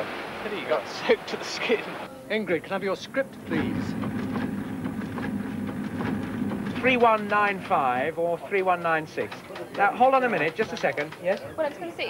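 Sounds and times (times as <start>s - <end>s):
duplicating machine humming: 2.1s - 8.2s
light clicking of paper feed: 3.5s - 7.8s, 9.2s - 11.5s.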